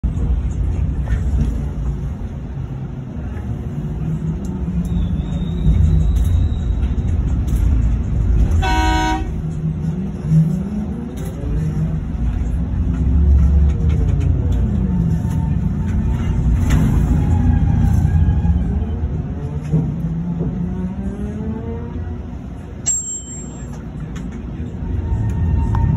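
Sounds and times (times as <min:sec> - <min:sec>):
horn blast: 0:08.5 - 0:09.4.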